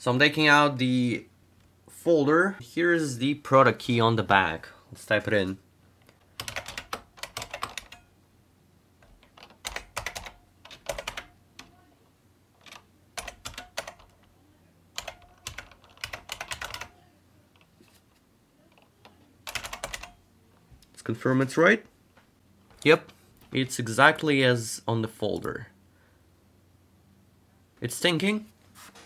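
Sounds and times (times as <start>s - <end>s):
computer keyboard typing: 6.2s - 8.1s, 9.0s - 11.8s, 12.6s - 14.3s, 15.0s - 17.0s, 18.7s - 20.2s.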